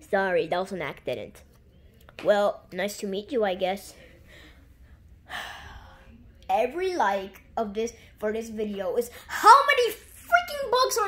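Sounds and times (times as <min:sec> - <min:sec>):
person gasping: 0:05.3 - 0:06.1.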